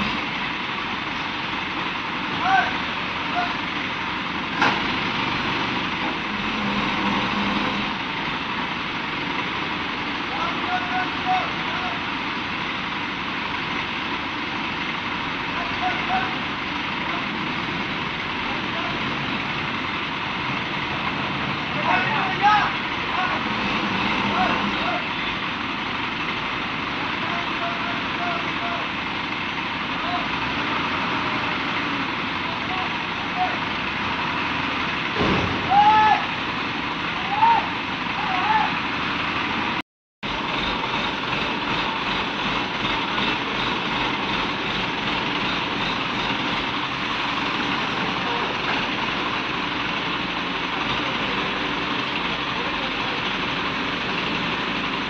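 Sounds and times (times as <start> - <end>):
crane diesel engines running: 0.0 - 55.0.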